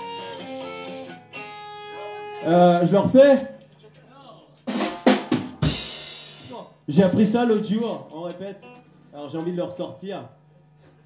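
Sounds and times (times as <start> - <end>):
drum strikes: 4.6 - 8.0.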